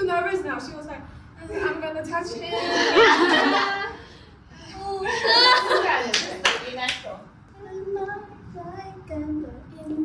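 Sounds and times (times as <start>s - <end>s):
women talking: 0.0s - 3.8s, 4.7s - 7.3s.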